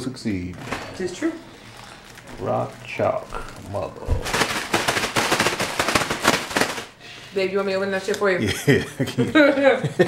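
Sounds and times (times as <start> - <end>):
plastic bag crinkling: 0.6 - 7.0.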